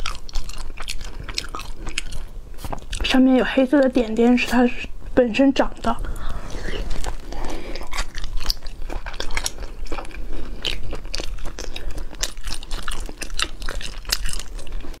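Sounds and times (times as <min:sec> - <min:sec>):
wet chewing and sucking: 0:00.0 - 0:03.2, 0:06.0 - 0:15.0.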